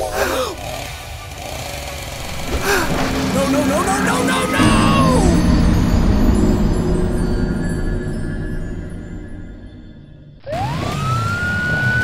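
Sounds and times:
steady low rumble: 2.2s - 10.5s
wordless voice cries: 2.6s - 5.5s
background music: 2.7s - 11.8s.

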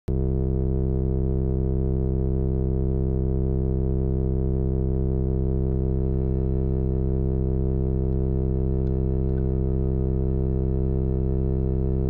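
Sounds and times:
electronic music drone: 0.1s - 12.0s.

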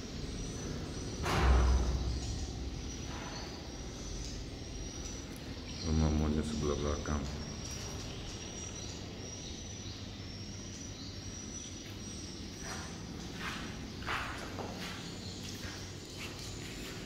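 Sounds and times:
footstep scuffs: 12.6s - 17.0s.

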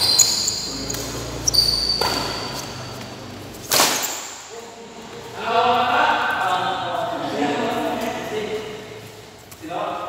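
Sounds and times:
racket hitting shuttlecock: 1.9s - 2.8s, 3.6s - 4.5s.

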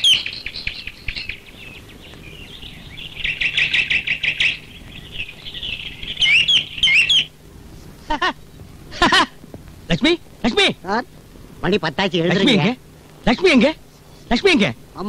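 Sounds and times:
birds chirping: 0.0s - 15.0s.

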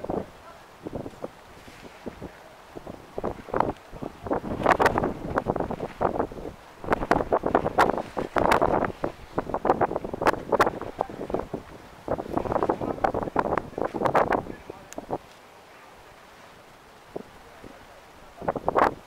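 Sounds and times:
wind buffeting microphone: 0.0s - 15.4s, 16.0s - 19.0s
crackling bursts: 0.9s - 15.4s.

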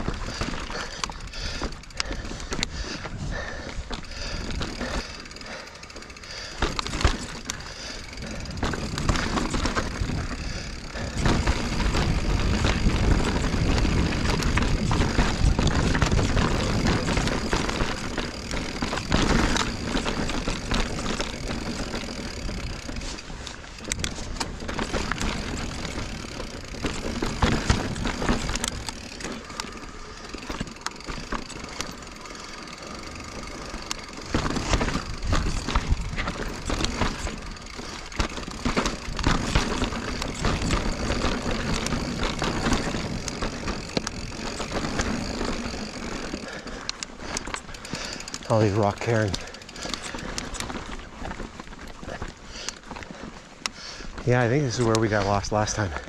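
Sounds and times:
bike knocks and rattles: 0.0s - 56.0s
bike tyres rolling on rock: 0.0s - 56.0s.

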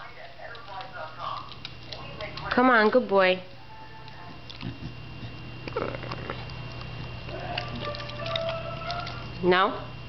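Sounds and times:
dog licking and chewing: 0.0s - 9.5s
steady low hum: 0.0s - 10.0s.

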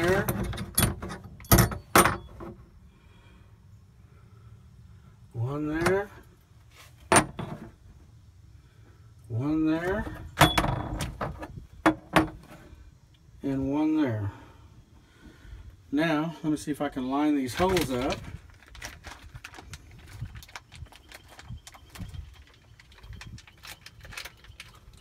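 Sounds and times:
metal washers clinking: 0.0s - 2.3s, 10.2s - 11.4s.

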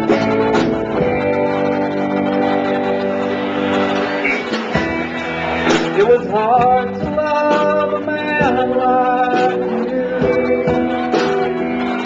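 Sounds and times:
guitars ringing chords: 0.0s - 12.0s
live rock band playing: 0.0s - 12.0s.

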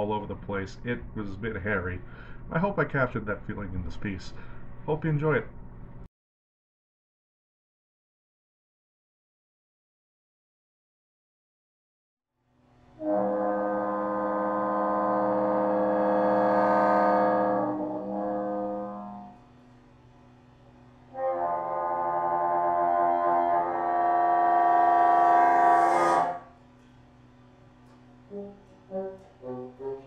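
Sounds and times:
bassoon long held notes: 12.9s - 19.6s, 21.0s - 26.6s, 28.3s - 30.0s.

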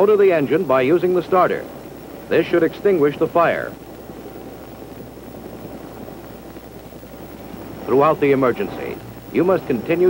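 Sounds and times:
helicopter engine noise: 0.0s - 10.0s
thin steady whine: 0.0s - 10.0s.

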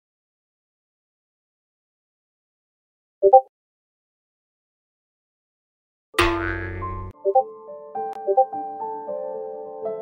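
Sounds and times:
comic boing sound effect: 6.2s - 7.1s.

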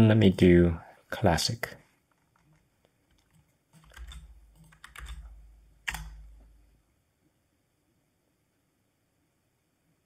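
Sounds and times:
keyboard key clicks: 3.2s - 6.4s.

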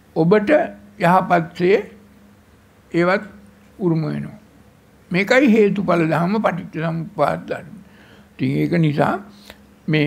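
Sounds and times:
man speaking: 0.2s - 2.0s, 2.9s - 4.5s, 5.1s - 10.0s.

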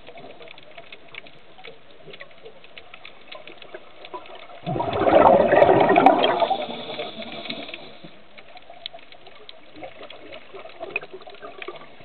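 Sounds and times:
regulator bubbles underwater: 0.0s - 12.0s
small clicks and crackles: 0.0s - 12.0s.

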